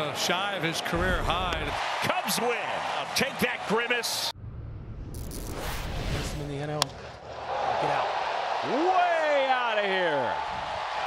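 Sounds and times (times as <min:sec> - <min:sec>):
ballpark crowd noise: 0:00.0 - 0:04.4, 0:06.7 - 0:11.0
transition whoosh: 0:04.4 - 0:06.7.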